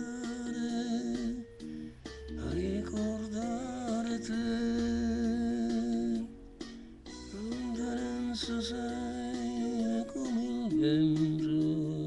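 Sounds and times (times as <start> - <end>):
karaoke backing track: 0.0 - 12.0.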